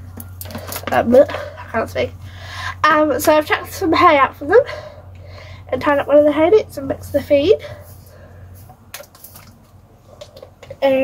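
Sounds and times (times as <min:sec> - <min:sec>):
plastic bottle crackle: 0:08.9 - 0:10.8.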